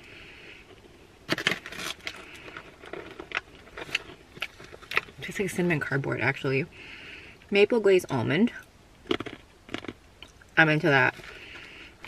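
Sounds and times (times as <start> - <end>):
crunching and chewing cookie: 0.6 - 5.3, 9.0 - 12.0
snack bag crinkling: 1.3 - 5.2, 9.0 - 10.0.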